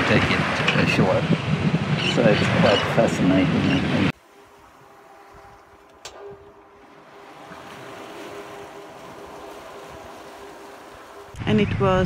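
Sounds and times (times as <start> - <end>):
wind: 0.0 - 12.0
water splashing along a hull: 4.1 - 12.0.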